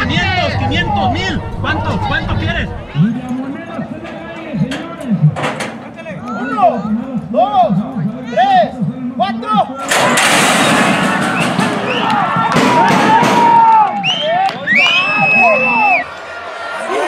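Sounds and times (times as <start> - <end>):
crowd shouting and cheering: 0.0 - 17.0
metal starting gate banging open: 3.9 - 6.0, 9.8 - 13.6.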